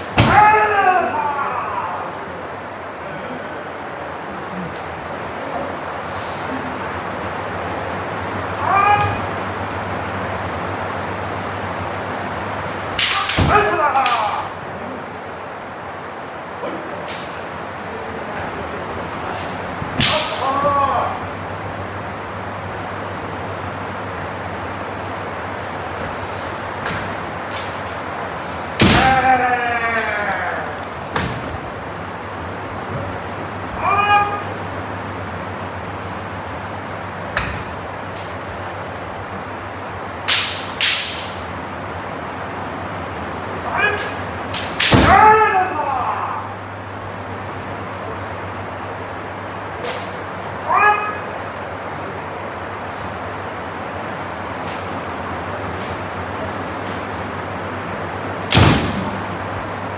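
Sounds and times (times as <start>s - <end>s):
kiai shouts: 0.1s - 2.4s, 8.6s - 9.4s, 13.0s - 14.6s, 20.0s - 21.4s, 28.8s - 30.8s, 33.7s - 34.6s, 43.6s - 46.6s, 50.6s - 51.4s
bamboo sword strikes cracking: 20.0s - 20.4s, 40.3s - 41.4s.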